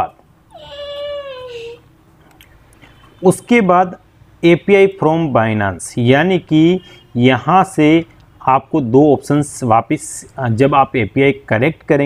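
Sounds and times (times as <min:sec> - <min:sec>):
high drawn-out animal call: 0:00.5 - 0:01.8.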